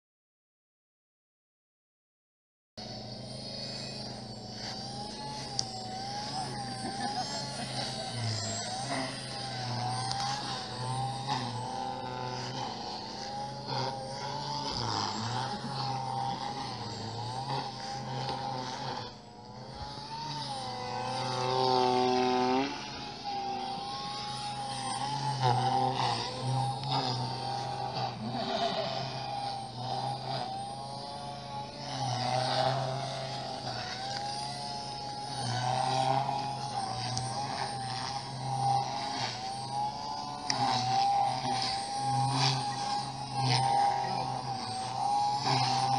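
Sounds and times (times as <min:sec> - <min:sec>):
electric motor whine: 0:02.8 - 0:45.9
rc helicopter rotor drone: 0:02.8 - 0:45.9.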